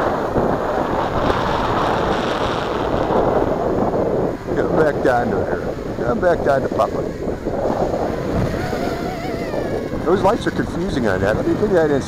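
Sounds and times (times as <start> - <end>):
wind rumbling on microphone: 0.0 - 12.0
drone propellers whining: 0.6 - 12.0.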